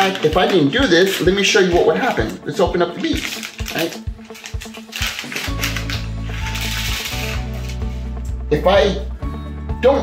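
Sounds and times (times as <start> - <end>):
plastic beads rattling: 0.0 - 2.4, 3.0 - 7.8
background music: 0.0 - 10.0.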